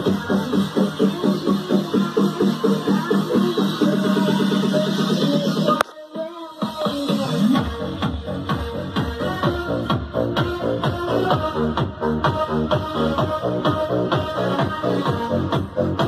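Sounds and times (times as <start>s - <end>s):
music with a regular beat: 0.0s - 16.0s.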